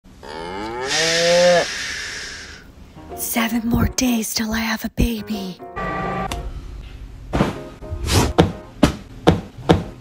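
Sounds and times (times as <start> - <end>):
cow mooing: 0.2 - 2.6, 5.8 - 6.3
breathy hiss: 0.8 - 2.8.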